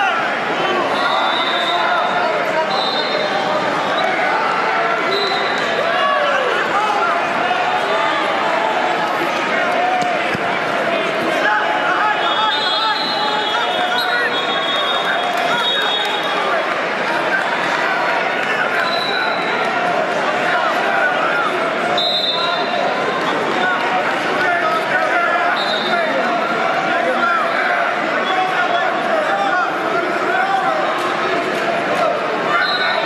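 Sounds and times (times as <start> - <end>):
crowd talking and shouting: 0.0 - 33.0.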